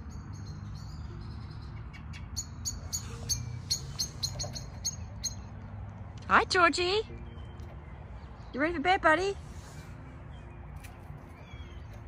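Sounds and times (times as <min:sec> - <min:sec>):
blackbird chinking calls: 0:00.1 - 0:05.5.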